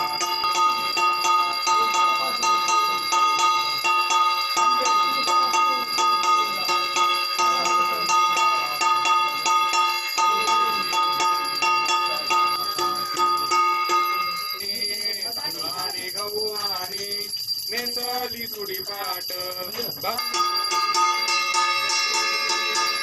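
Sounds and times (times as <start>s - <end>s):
handheld bell ringing rapidly: 0.0s - 23.0s.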